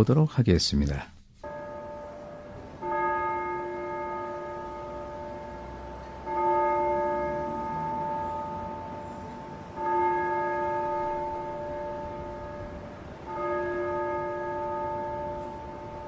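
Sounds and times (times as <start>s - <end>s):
bell tolling: 1.4s - 16.0s.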